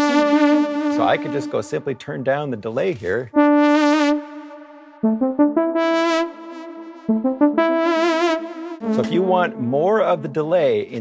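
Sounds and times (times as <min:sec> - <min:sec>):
synthesizer held notes: 0:00.0 - 0:02.0, 0:03.3 - 0:10.4.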